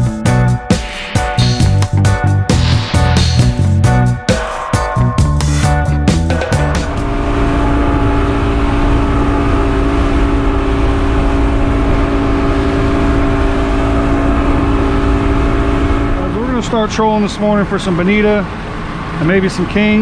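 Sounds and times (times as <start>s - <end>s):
background music: 0.0s - 7.2s
boat engine running: 5.0s - 20.0s.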